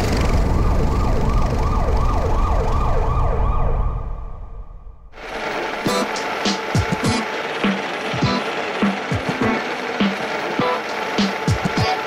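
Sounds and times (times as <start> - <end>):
siren-like wail: 0.0 - 12.0.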